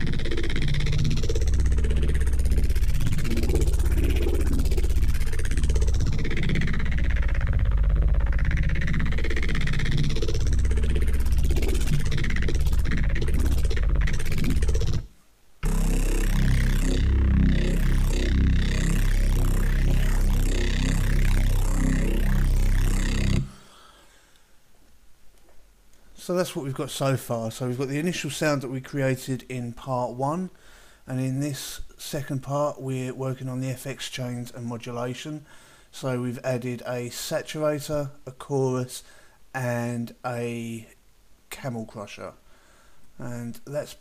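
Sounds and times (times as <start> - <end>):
heavy distorted bass synth: 0.0 - 23.6.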